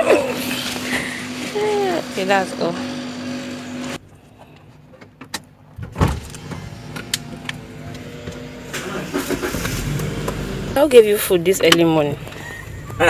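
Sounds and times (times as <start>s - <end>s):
car engine humming: 0.0s - 13.0s.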